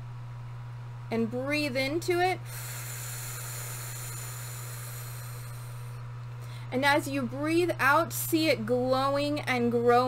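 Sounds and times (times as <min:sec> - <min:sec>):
steady low hum: 0:00.0 - 0:10.0
woman breathing: 0:02.4 - 0:06.7.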